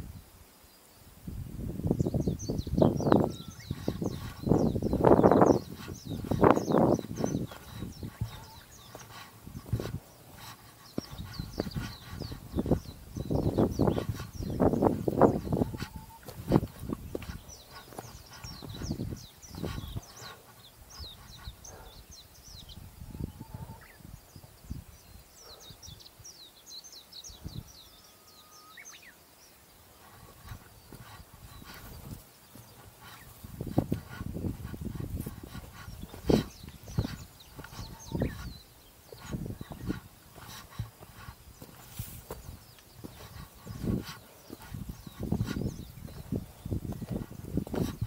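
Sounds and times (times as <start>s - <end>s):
birds chirping: 1.8s - 48.0s
footsteps on trail: 2.2s - 22.0s, 29.8s - 48.0s.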